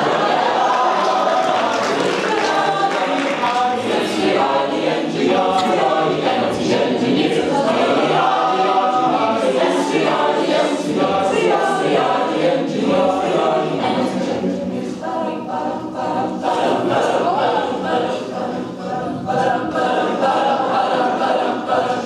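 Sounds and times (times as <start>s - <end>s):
a cappella group singing: 0.0s - 22.0s.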